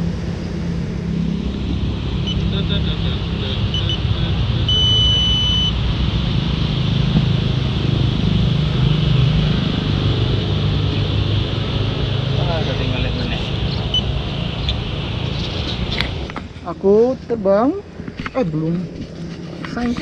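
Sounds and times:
constant low rumble: 0.0 - 20.0
short electronic beeps: 2.2 - 2.6, 3.4 - 5.8, 13.9 - 14.1
steady high beep: 2.2 - 5.8.

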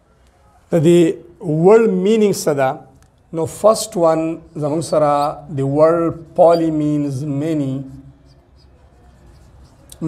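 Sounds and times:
marker scratching on a whiteboard: 4.4 - 10.0.

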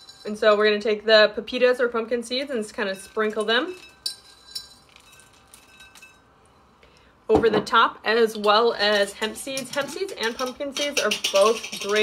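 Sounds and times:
seeds clinking in glass jar: 2.8 - 6.2.

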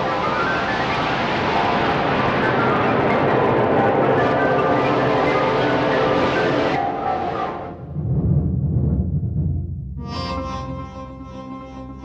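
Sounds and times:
rushing jet-like sound effect: 0.0 - 8.5.

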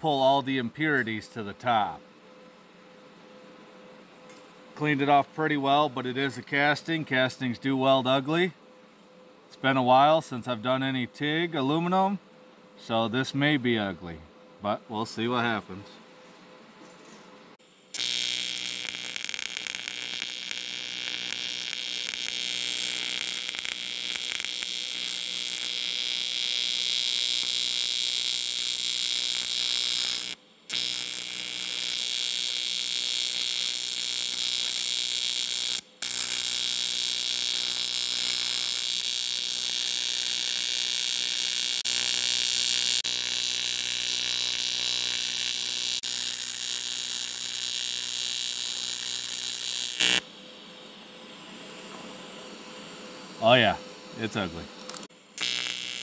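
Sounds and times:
welding arc buzzing: 17.6 - 56.0.

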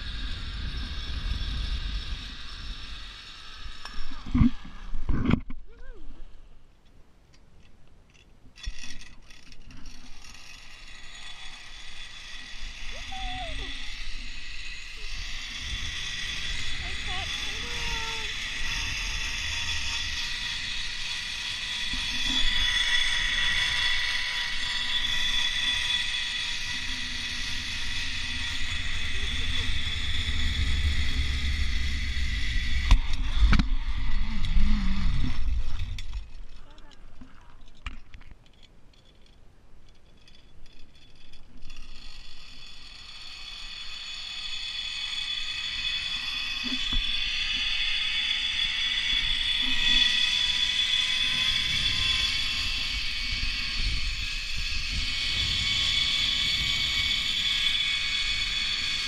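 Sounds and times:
wind rumbling on microphone: 0.0 - 6.4, 11.0 - 38.3, 45.2 - 59.0
zipline pulleys whirring on cable: 0.0 - 6.6, 8.1 - 37.8, 38.5 - 59.0.

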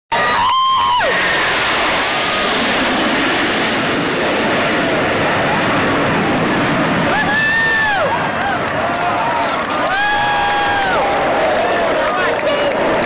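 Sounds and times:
jets roaring past: 0.2 - 13.0.

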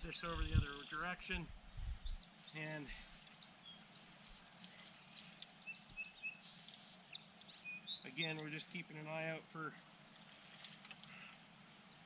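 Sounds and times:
birds chirping: 0.0 - 12.0
faint outdoor background noise: 0.0 - 12.0.

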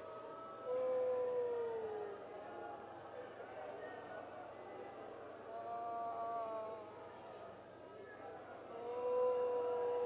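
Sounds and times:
long wailing cry: 0.4 - 2.2, 5.5 - 6.9, 8.8 - 10.0.

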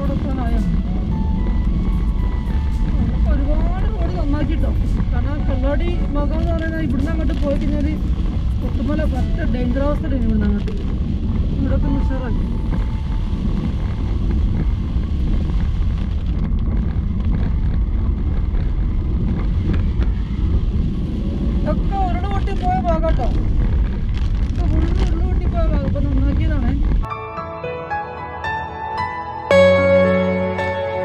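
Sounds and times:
car engine rumble: 0.0 - 27.1
tyres on wet road: 0.0 - 27.1.

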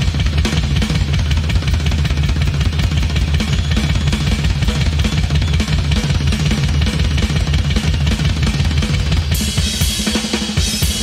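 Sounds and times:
bass drum and snare hits: 0.0 - 11.0
rock band playing: 0.0 - 11.0.

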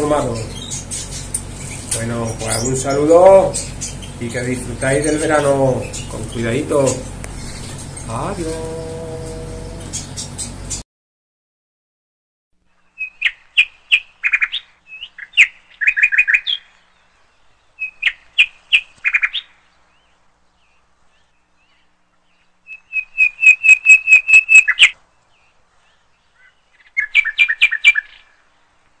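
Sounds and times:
songbird chirps and trills: 0.0 - 10.8, 12.7 - 29.0.

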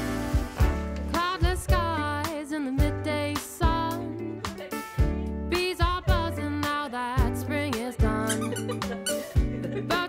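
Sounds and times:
upbeat music with drum beat: 0.0 - 6.4, 7.2 - 10.0.

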